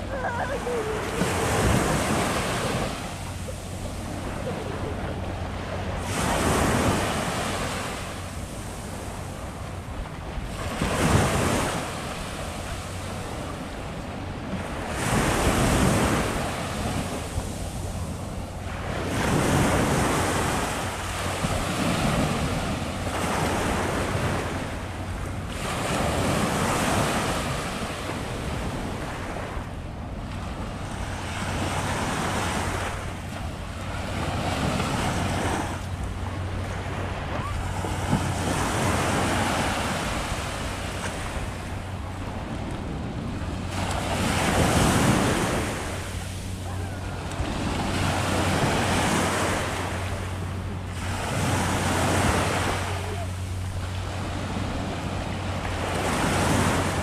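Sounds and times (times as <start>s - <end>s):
small waves washing on beach: 0.0s - 57.0s.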